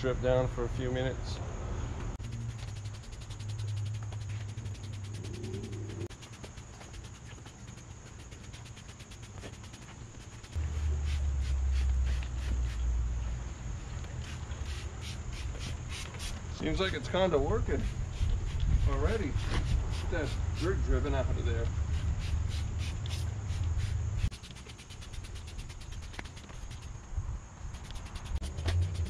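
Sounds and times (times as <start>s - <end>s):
insects chirping: 0.0s - 29.0s.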